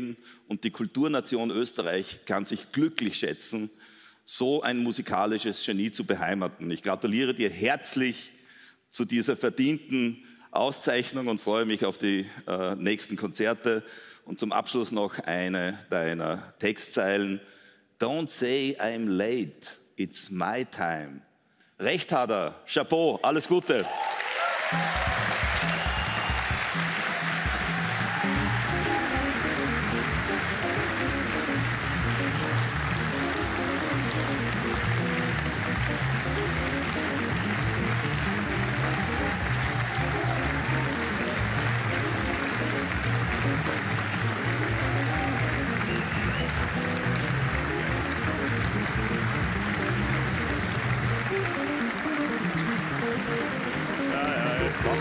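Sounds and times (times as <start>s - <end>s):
audience applauding: 23.8s - 55.0s
music playing: 24.6s - 55.0s.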